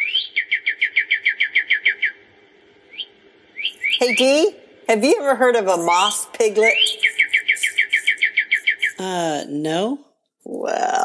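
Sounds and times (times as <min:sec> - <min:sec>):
rapid trill of high chirps: 0:00.0 - 0:09.0.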